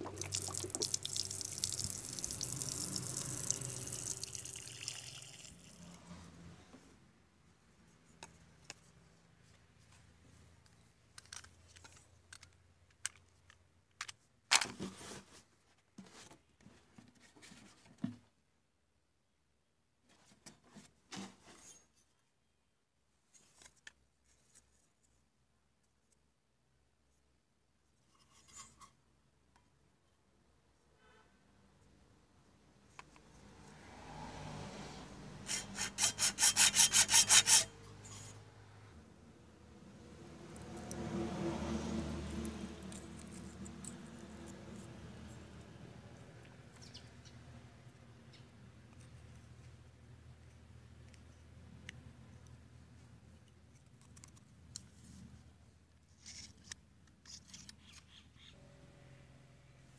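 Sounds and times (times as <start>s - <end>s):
hacksaw cutting plastic: 35.4s - 37.8s.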